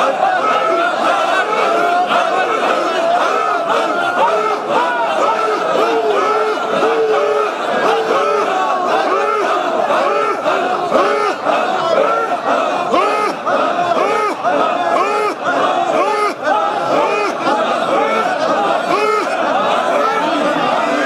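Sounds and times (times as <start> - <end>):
crowd of men chanting and shouting: 0.0 - 21.0.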